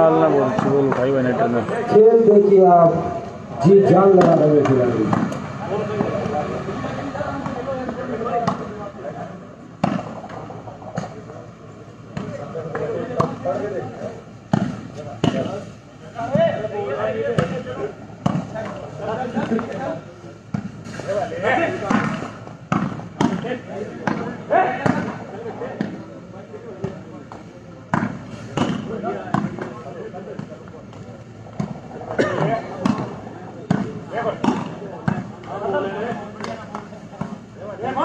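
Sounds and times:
volleyball smacked by hands: 0:04.2 - 0:05.4, 0:08.4 - 0:08.7, 0:09.8 - 0:11.2, 0:12.1 - 0:13.6, 0:14.5 - 0:15.6, 0:18.2 - 0:18.8, 0:21.8 - 0:26.0, 0:26.8 - 0:30.6.

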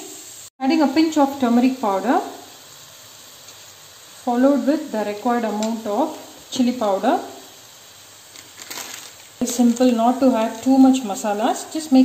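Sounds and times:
vegetables sizzling in pan: 0:00.0 - 0:12.0
faint crackles: 0:08.2 - 0:10.8.

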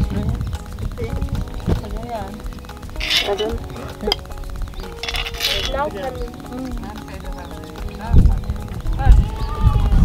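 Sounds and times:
background music: 0:00.0 - 0:10.0
metal spoon scraping a pot: 0:03.0 - 0:03.7, 0:04.9 - 0:06.0.

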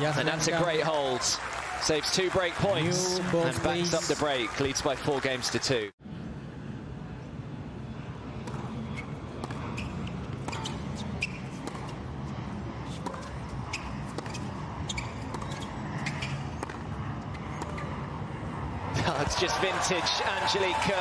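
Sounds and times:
crowd murmuring: 0:02.6 - 0:04.6
tennis ball bouncing: 0:08.4 - 0:12.1, 0:12.8 - 0:18.0
racket striking tennis ball: 0:12.9 - 0:17.9.

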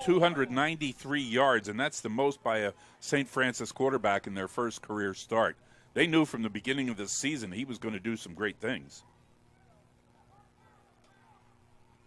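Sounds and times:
football broadcast ambience: 0:00.0 - 0:12.0
steady low hum: 0:00.0 - 0:12.0.

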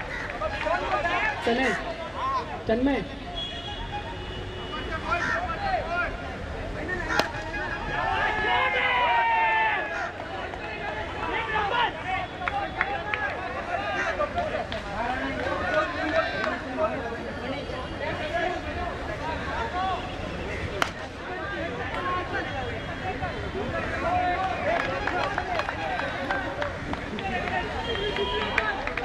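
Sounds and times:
people talking and calling out: 0:00.0 - 0:29.0.

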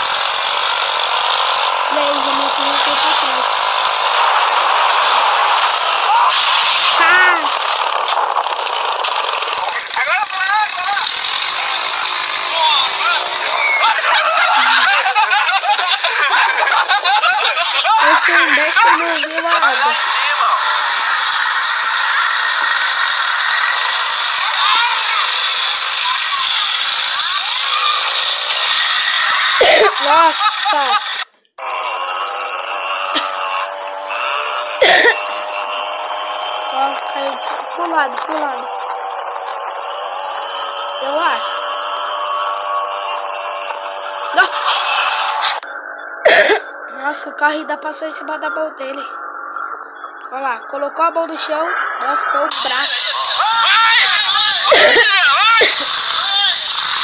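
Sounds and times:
indistinct voices calling out: 0:01.6 - 0:08.2, 0:08.9 - 0:57.0.

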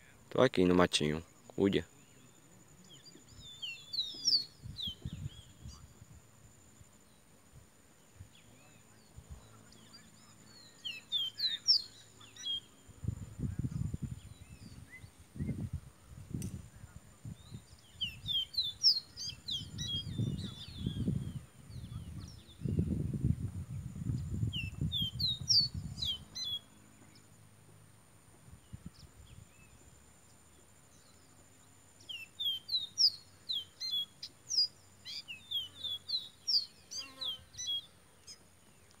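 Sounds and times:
bird singing whistled notes: 0:01.9 - 0:06.0, 0:08.2 - 0:15.7, 0:16.8 - 0:27.3, 0:32.0 - 0:38.9.

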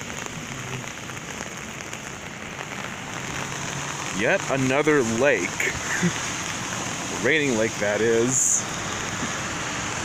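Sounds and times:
rain pattering on umbrella: 0:00.0 - 0:10.0.

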